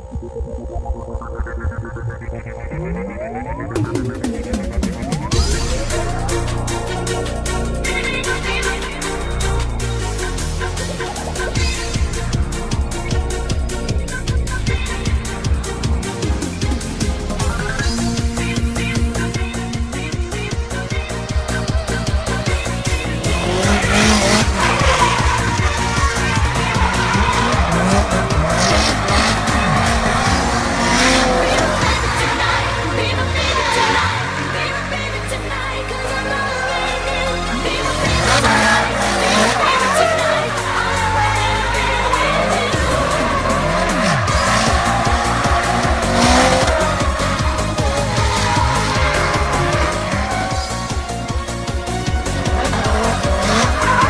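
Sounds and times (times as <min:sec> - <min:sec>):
car engine revving: 0:00.0 - 0:54.0
electronic music with steady beat: 0:00.0 - 0:54.0
tyres squealing: 0:22.1 - 0:35.1, 0:37.6 - 0:51.3
tyre squeal: 0:23.4 - 0:32.7.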